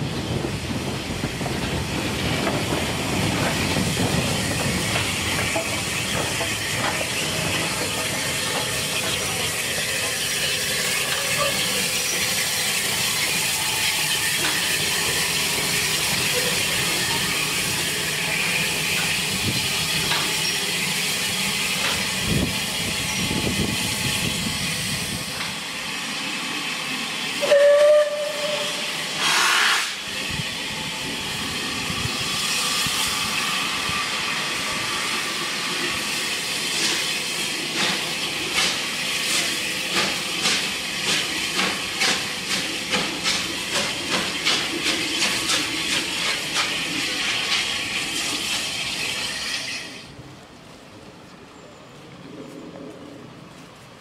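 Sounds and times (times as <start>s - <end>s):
steam hissing: 0.0s - 50.1s
steam whistle blasts: 27.4s - 30.0s.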